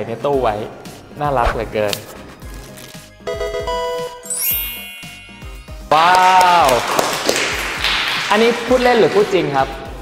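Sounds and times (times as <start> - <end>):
music with light beat: 0.0 - 10.0.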